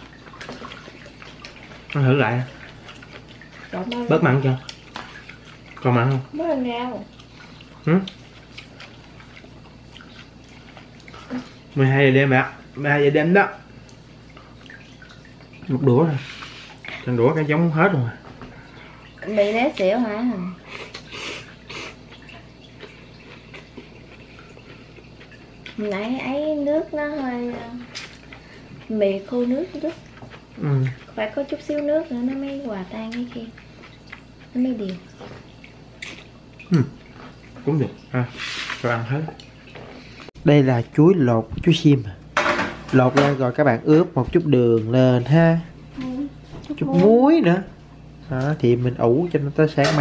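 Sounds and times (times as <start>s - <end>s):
chewing: 0.0s - 6.3s, 7.0s - 11.7s, 20.7s - 26.1s, 27.8s - 29.0s, 29.6s - 40.3s
low room hum: 0.0s - 50.0s.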